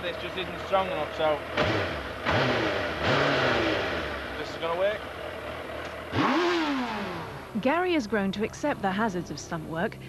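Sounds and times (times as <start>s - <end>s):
motorcycle engine revving: 0.0s - 10.0s.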